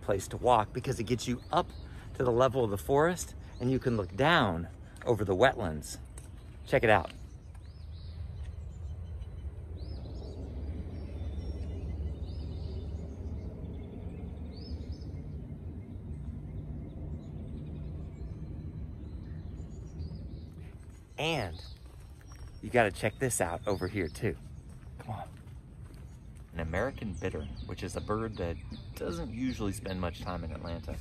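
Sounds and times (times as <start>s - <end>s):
bird chirping: 0.0s - 31.0s
steady low rumble: 0.0s - 31.0s.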